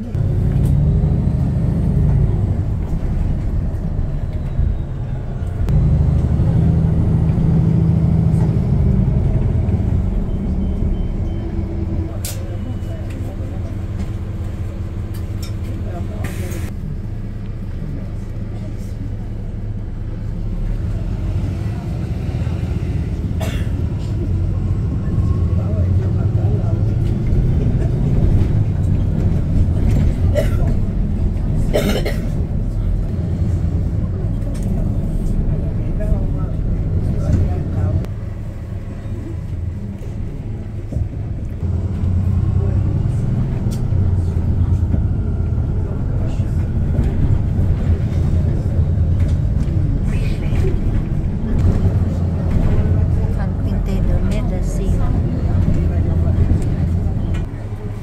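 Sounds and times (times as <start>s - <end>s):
bus engine and road noise: 0.0s - 58.0s.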